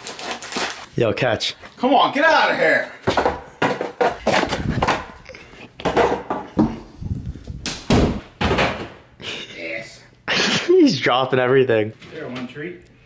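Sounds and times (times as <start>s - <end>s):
door thudding and knocking: 7.6s - 9.0s.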